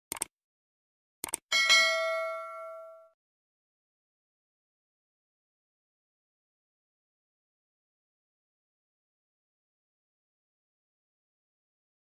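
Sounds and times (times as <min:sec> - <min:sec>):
notification bell ding: 0:01.5 - 0:03.2.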